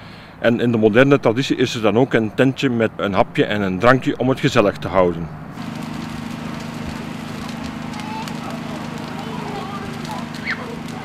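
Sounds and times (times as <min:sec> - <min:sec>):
generator engine humming: 0:04.1 - 0:11.0
bonfire crackling: 0:05.5 - 0:11.0.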